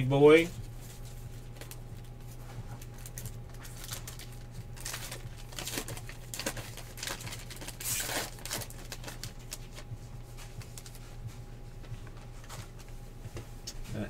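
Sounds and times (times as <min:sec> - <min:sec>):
low electrical hum: 0:00.0 - 0:14.0
paper wrapper crinkling and tearing: 0:01.0 - 0:09.9.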